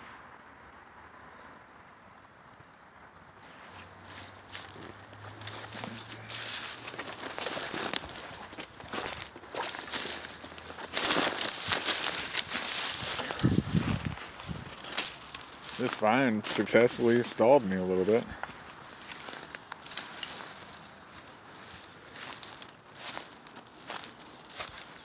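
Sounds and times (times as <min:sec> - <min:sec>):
brush rustling: 0:03.4 - 0:25.0
footsteps crunching dry leaves: 0:03.4 - 0:25.0.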